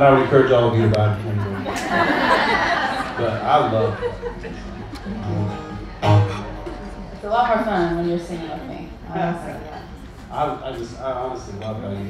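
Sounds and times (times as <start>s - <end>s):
acoustic guitar chords: 4.5s - 8.0s.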